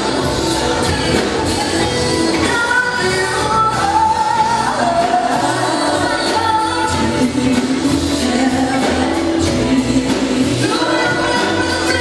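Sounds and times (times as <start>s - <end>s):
drum beat with cymbals: 0.0s - 12.0s
keyboards: 0.0s - 12.0s.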